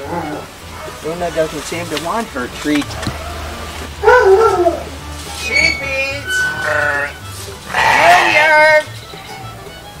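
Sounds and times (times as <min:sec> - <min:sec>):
sheep bleating: 0:05.5 - 0:08.9.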